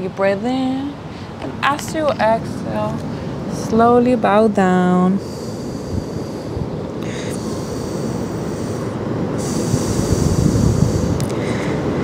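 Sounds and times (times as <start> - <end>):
low rumbling background noise: 0.0 - 12.0
high hiss: 4.8 - 12.0.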